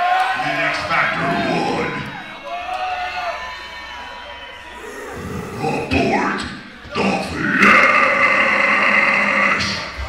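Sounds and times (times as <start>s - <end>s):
person growling into microphone: 4.7s - 10.0s.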